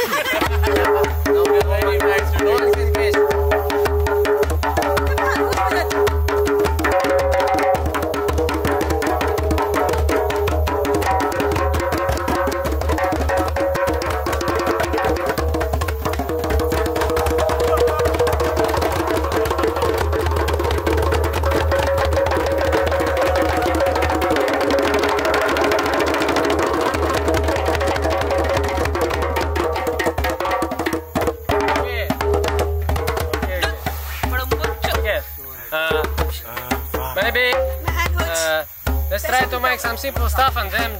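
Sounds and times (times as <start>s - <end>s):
djembes drumming: 0.0s - 40.9s.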